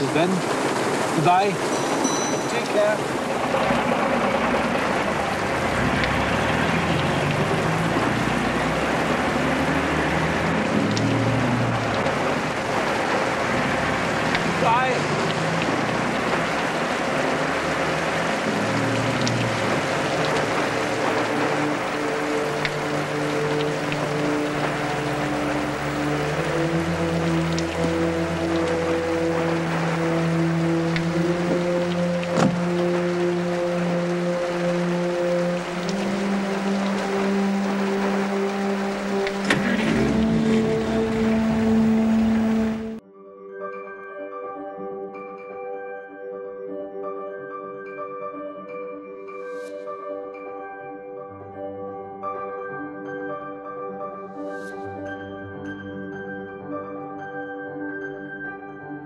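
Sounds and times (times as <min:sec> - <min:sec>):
steady rain: 0:00.0 - 0:43.0
film score held notes: 0:00.0 - 0:43.1
bus engine pulling away: 0:02.3 - 0:43.0.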